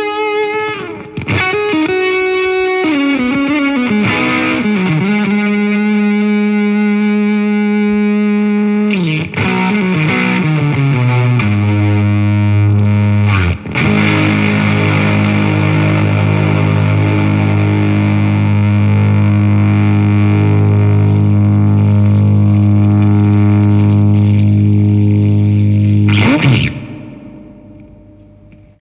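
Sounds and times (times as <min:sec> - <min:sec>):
fuzzed electric guitar: 0:00.0 - 0:28.8.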